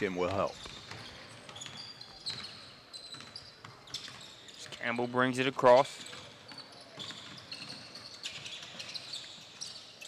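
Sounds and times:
sneakers squeaking on gym floor: 0:00.0 - 0:10.0
basketball bouncing: 0:00.1 - 0:04.3.

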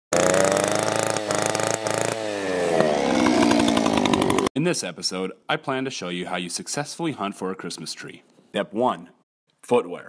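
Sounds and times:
chainsaw engine revving: 0:00.1 - 0:04.5.

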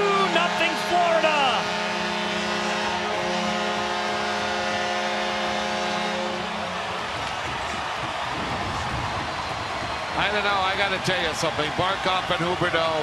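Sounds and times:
goal horn low note: 0:00.0 - 0:06.8
crowd cheering and clapping: 0:00.0 - 0:13.0.

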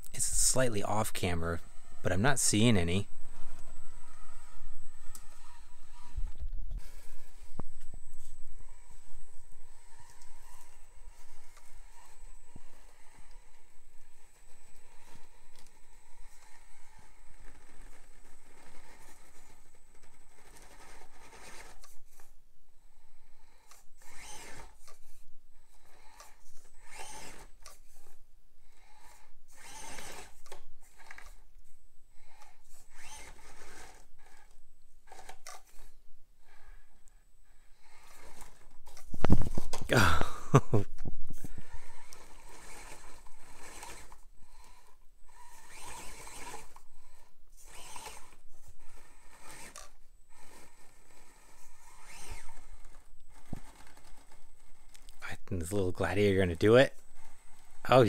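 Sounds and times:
small electric motor whirring: 0:00.0 - 0:58.0.

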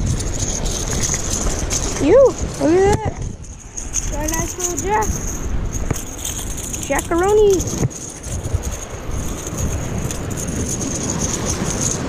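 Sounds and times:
surf washing against rocks: 0:00.0 - 0:12.0
wind rumbling on microphone: 0:00.0 - 0:12.0.

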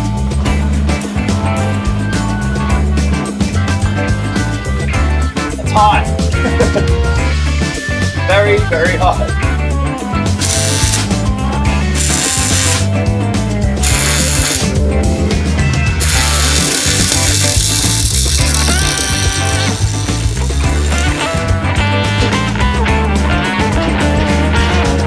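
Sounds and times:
rock music with heavy bass: 0:00.0 - 0:25.0
electric welding arc crackling: 0:10.4 - 0:11.2, 0:11.9 - 0:12.9, 0:13.8 - 0:14.8, 0:16.0 - 0:21.4.

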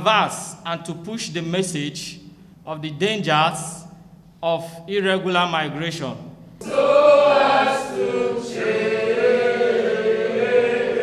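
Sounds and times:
group singing long notes: 0:06.6 - 0:11.0.

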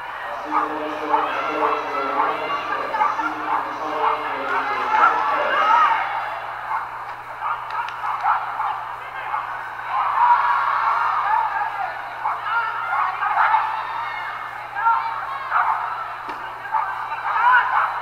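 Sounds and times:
indistinct voices calling and talking: 0:00.0 - 0:18.0
steady low hum: 0:00.0 - 0:18.0.

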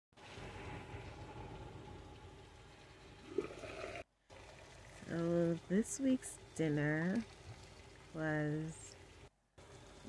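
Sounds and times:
water boiling in pot: 0:00.2 - 0:10.0.

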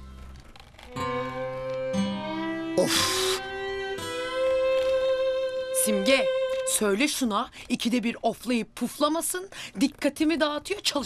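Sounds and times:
background music sustained chords: 0:00.0 - 0:07.0.

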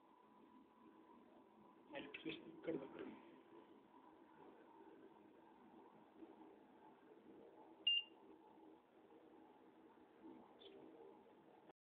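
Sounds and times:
faint high chirp: 0:07.8 - 0:08.2.

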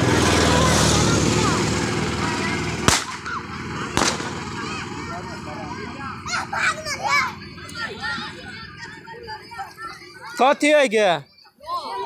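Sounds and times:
sharp bangs with ringing: 0:02.8 - 0:05.0.

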